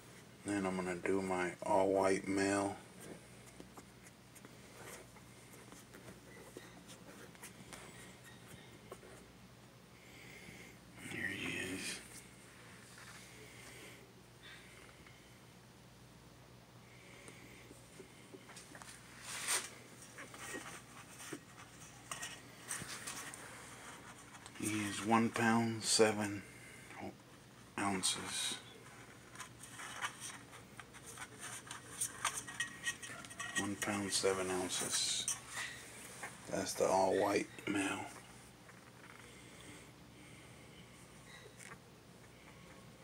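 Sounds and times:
faint rustling: 0:00.0 - 0:09.4, 0:16.9 - 0:43.0
puppy scratching in metal bowl: 0:29.4 - 0:35.8.

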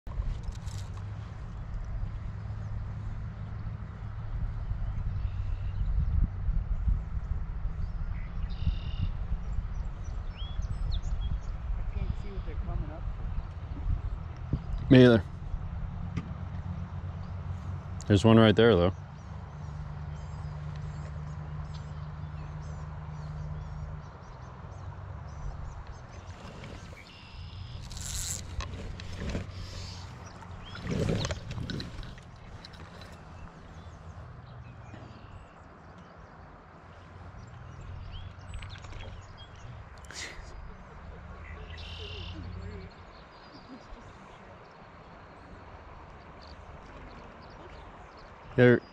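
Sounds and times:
low rumble of wind and water: 0:00.0 - 0:48.9
short bird chirps: 0:08.5 - 0:09.2, 0:41.7 - 0:42.4
faint outdoor hiss: 0:39.2 - 0:48.9.

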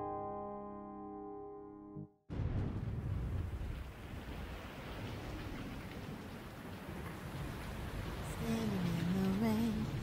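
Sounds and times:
steady rain falling: 0:02.3 - 0:10.0.

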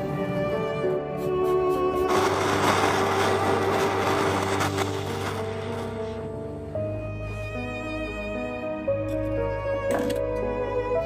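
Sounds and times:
bellows driven torch hissing: 0:00.7 - 0:06.7.

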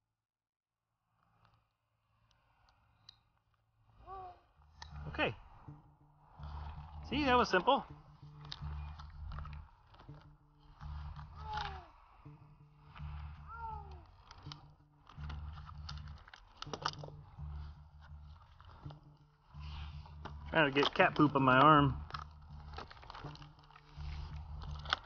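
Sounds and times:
climbing gear against rope: 0:03.0 - 0:25.0
climbing spurs crunching into bark: 0:06.4 - 0:25.0.

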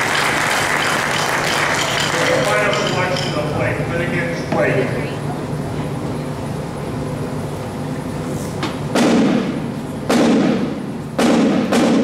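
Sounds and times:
loud field drum strokes: 0:08.9 - 0:12.0.

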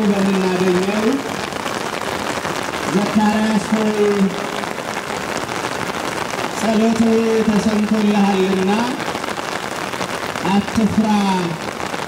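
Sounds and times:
rain pattering: 0:00.0 - 0:12.0.

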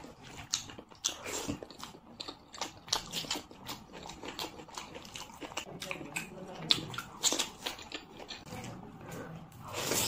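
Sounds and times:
chewing with wet mouth clicks: 0:00.0 - 0:08.5.

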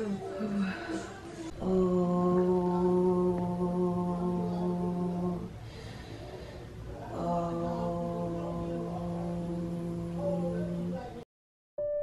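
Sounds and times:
woman humming a low tone: 0:01.6 - 0:05.5, 0:07.2 - 0:11.2.

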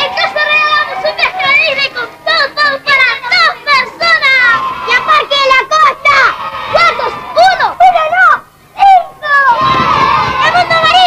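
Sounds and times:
children calling out and talking: 0:00.0 - 0:11.0.

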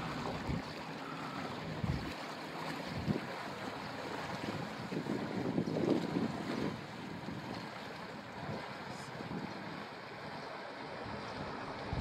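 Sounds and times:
wind buffeting microphone: 0:00.0 - 0:00.8, 0:01.6 - 0:09.9, 0:11.0 - 0:12.0
water churning and lapping: 0:00.0 - 0:12.0.

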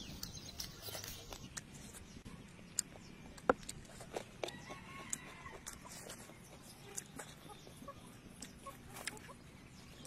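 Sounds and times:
eating clicks and smacks: 0:02.7 - 0:07.4.

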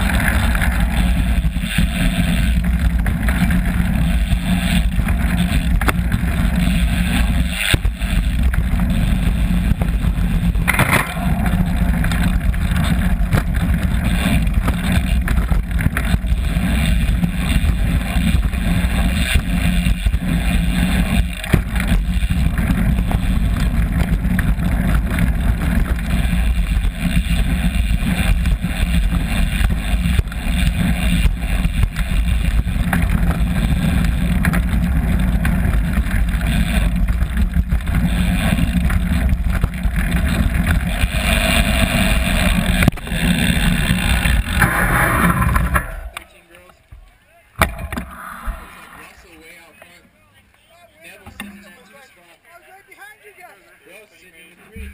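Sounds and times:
bike rumbling and rattling on dirt: 0:00.0 - 0:50.0, 0:54.6 - 0:54.9.

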